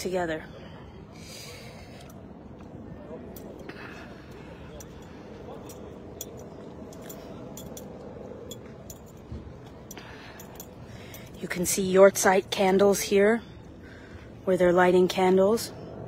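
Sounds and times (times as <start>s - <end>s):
outdoor background hiss: 0.0s - 16.0s
small clinks: 1.9s - 12.4s.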